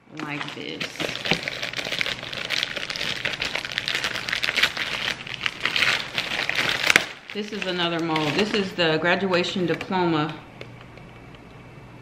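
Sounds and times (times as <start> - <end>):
thin plastic crinkling: 0.1 - 10.8.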